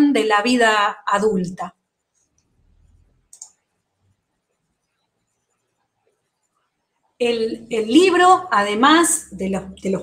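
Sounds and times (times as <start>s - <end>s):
computer mouse click: 3.3s - 3.7s.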